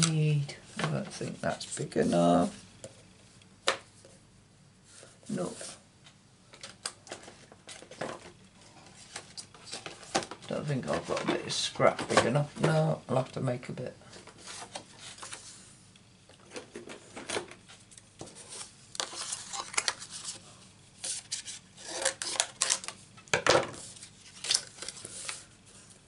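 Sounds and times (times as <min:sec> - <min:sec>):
paper and plates rustling and tapping: 0:00.0 - 0:03.0, 0:06.5 - 0:12.9, 0:16.3 - 0:20.4.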